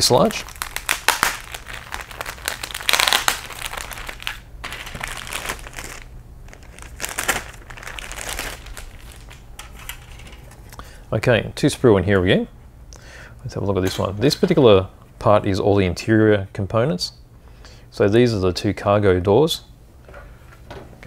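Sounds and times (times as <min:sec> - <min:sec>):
plastic bag crinkling: 0:00.0 - 0:10.8.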